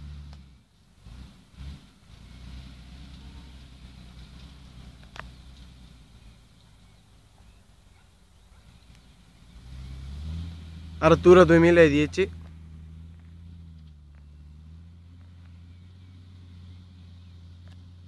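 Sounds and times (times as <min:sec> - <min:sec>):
distant tractor engine rumbling: 0:00.0 - 0:18.0.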